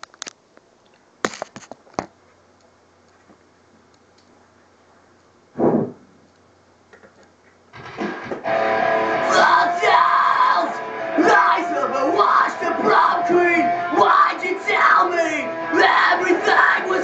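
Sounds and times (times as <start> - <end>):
short thud: 5.6 - 6.1
metalcore with distorted guitars: 7.8 - 17.0.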